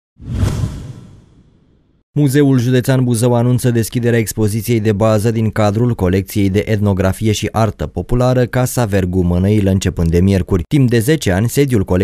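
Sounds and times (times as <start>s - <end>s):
whoosh with low rumbling boom: 0.2s - 2.0s.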